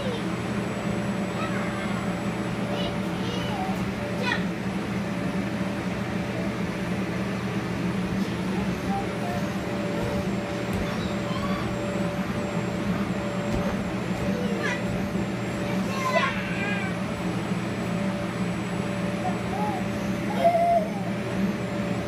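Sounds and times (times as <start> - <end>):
blower fan drone: 0.0 - 22.0.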